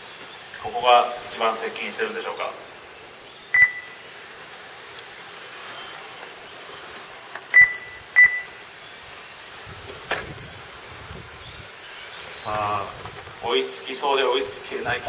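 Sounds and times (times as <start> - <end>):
toy car motors whining: 0.0 - 15.0
short high beeps: 3.5 - 4.0, 7.5 - 8.6.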